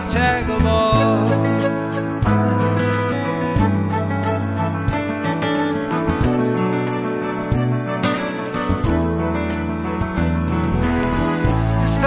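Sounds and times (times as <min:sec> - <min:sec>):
bass line: 0:00.0 - 0:12.0
guitar: 0:00.0 - 0:12.0.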